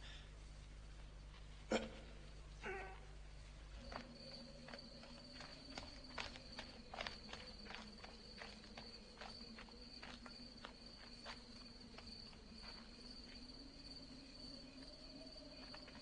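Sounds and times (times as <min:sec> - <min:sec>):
light footsteps: 0:03.5 - 0:14.0.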